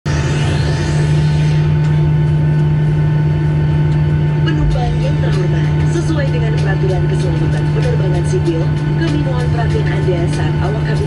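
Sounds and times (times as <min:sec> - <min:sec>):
aircraft cabin drone: 0:00.0 - 0:11.0
safety video soundtrack: 0:00.1 - 0:11.0.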